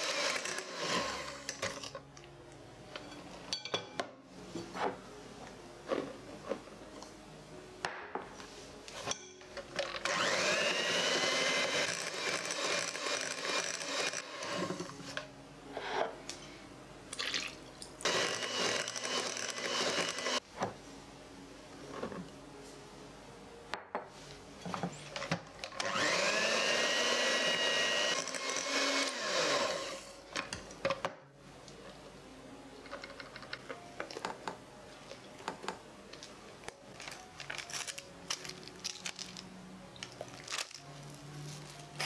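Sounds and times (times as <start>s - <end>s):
electric hand mixer whining: 0.0s - 1.5s, 10.0s - 14.9s, 18.0s - 20.4s, 25.8s - 30.2s.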